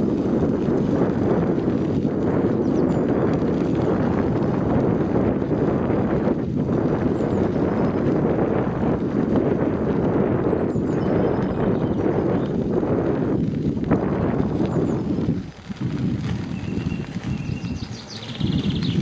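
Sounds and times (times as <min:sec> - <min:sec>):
bicycle rumbling on dirt path: 0:00.0 - 0:19.0.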